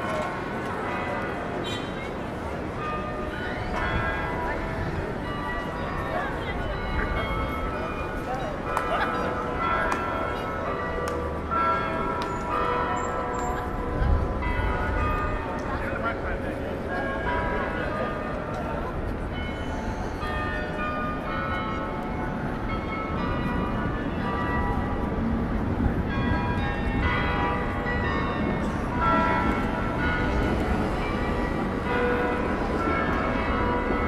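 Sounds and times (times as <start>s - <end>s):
bells ringing: 0.0s - 34.0s
city traffic rumble: 0.0s - 34.0s
crowd chatter: 0.0s - 34.0s.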